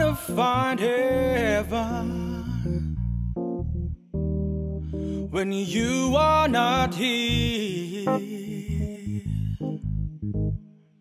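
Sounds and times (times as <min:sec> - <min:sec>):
deep bass notes: 0:00.0 - 0:10.6
electronic keyboard chords: 0:00.0 - 0:10.8.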